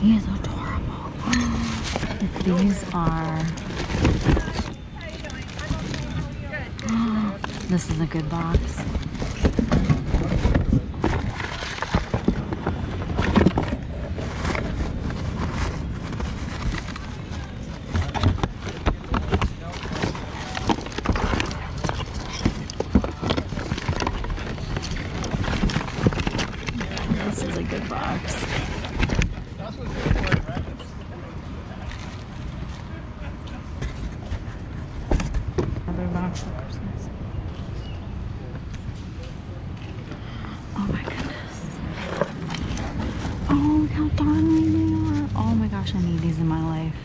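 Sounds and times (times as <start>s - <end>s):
indistinct voices talking: 0.0s - 11.0s, 35.8s - 47.0s
plastic bags rustling: 1.5s - 30.6s
rummaging in cardboard box: 1.5s - 30.8s, 40.8s - 46.8s.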